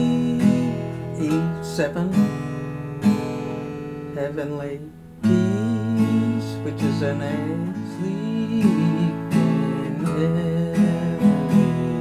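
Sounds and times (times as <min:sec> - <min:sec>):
acoustic guitar strums: 0:00.0 - 0:12.0.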